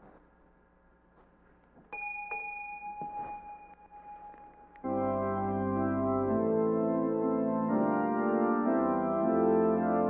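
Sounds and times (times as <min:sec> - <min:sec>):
bell ringing: 0:01.9 - 0:04.9.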